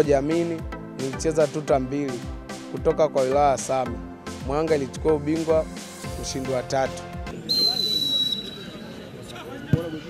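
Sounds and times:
murmur of spectators: 7.3s - 10.0s
referee's whistle blast: 7.4s - 8.8s.

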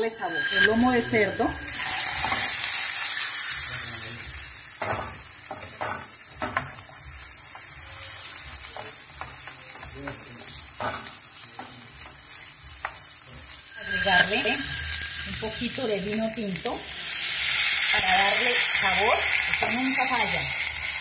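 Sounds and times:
meat sizzling in frying pan: 1.6s - 21.0s.

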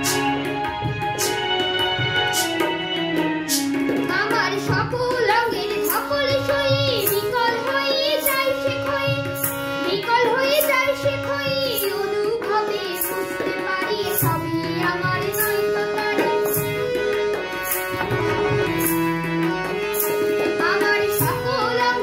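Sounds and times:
hand percussion strokes: 0.0s - 5.1s
instrumental accompaniment: 0.0s - 22.0s
boy singing: 3.4s - 22.0s.

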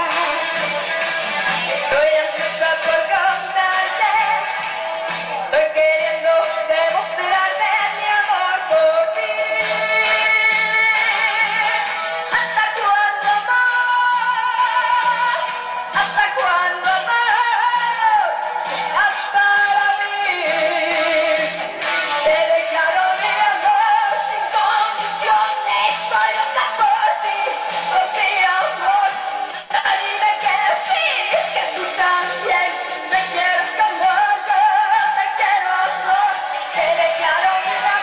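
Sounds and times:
instrumental pop backing: 0.0s - 38.0s
woman singing with vibrato: 0.0s - 38.0s.

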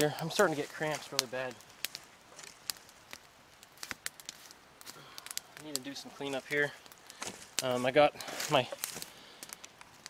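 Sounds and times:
campfire crackling: 0.0s - 10.0s
sharp pops of fire: 0.0s - 10.0s.

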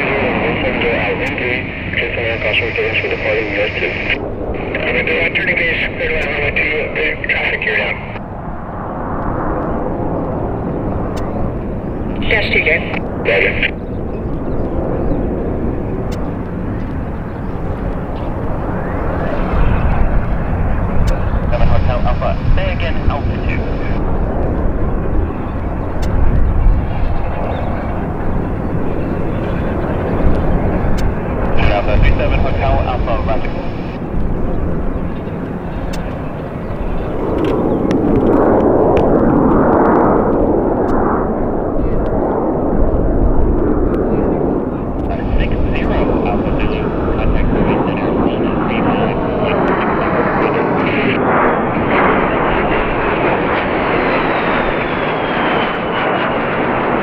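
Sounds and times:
voices: 0.0s - 8.2s, 11.0s - 13.8s, 17.6s - 38.1s, 43.7s - 54.8s
turboprop engines droning: 0.0s - 57.0s.

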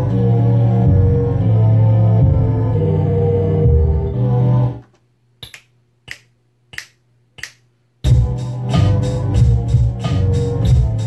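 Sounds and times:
music beat playback: 0.0s - 4.8s, 7.4s - 11.0s
snap hits: 5.4s - 7.7s.

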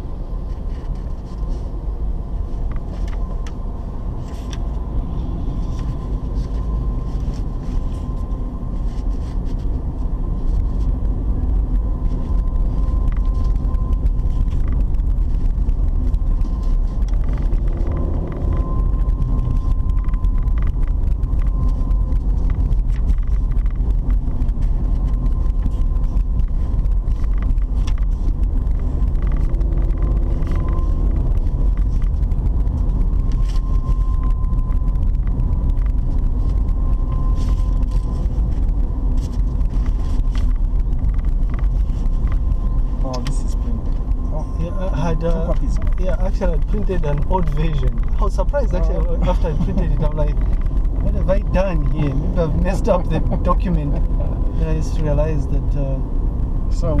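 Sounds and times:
car engine and tyre rumble: 0.0s - 57.0s
thin steady whine: 0.0s - 57.0s.

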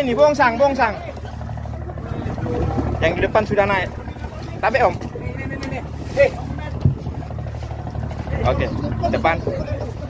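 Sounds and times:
boat engine humming: 0.0s - 10.0s.

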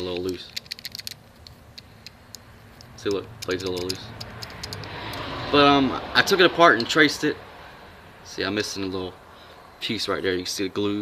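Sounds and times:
pocket knife blade clicking: 0.5s - 5.2s.

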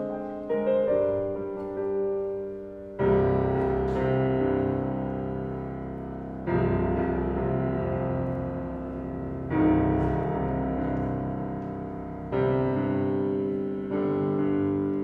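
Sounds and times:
grand piano chords: 0.0s - 15.0s.

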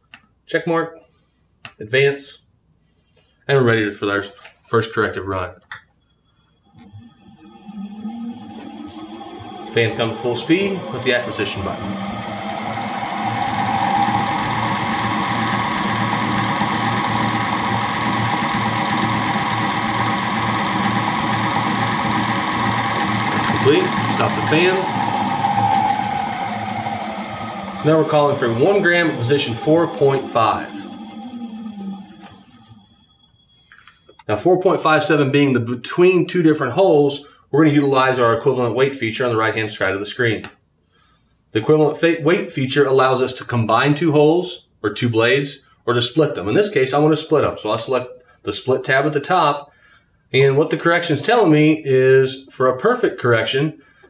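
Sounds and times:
high-pitched whining tones: 5.7s - 34.3s
small electric motor spinning up: 5.8s - 34.2s
low hum: 5.9s - 34.2s.

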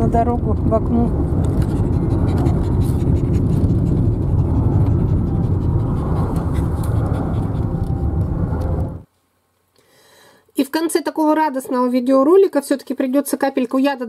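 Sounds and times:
car road and engine noise: 0.0s - 9.1s.

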